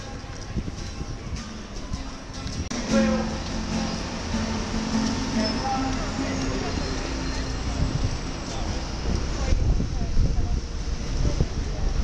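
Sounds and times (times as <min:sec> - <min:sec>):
music with voices: 0:00.0 - 0:07.6.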